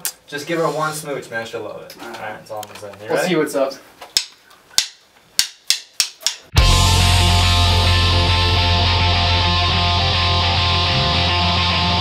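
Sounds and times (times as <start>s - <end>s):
drumstick clicks: 4.0s - 6.6s
rock band playing loud: 6.6s - 12.0s.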